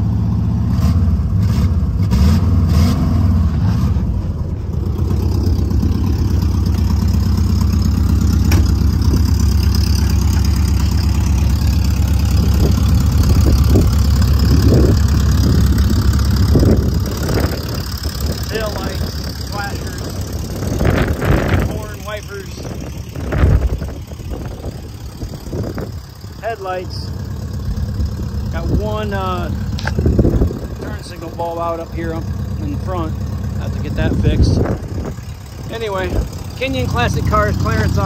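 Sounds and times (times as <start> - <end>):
car engine idling: 0.0 - 38.0.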